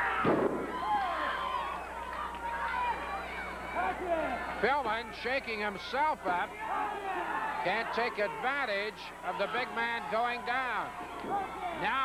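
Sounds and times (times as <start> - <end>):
crowd shouting: 0.0 - 12.0.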